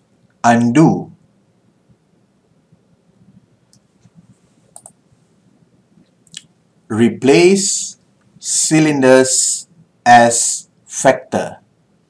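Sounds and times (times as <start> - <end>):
quiet room noise: 0.0 - 12.0
faint clicks: 3.7 - 5.0.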